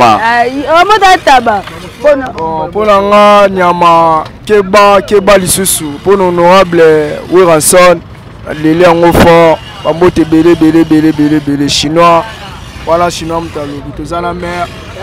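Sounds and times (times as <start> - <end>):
man speaking: 0.0 - 0.2, 2.3 - 14.8
vehicle engine hum: 0.0 - 15.0.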